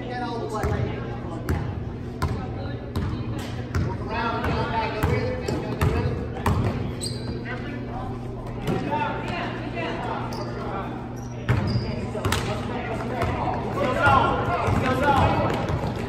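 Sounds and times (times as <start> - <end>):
voices of players and spectators: 0.0 - 16.0.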